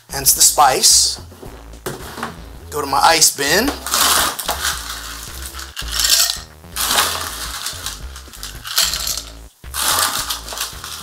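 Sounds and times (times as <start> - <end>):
ice cubes clattering in a bin: 5.8 - 11.0.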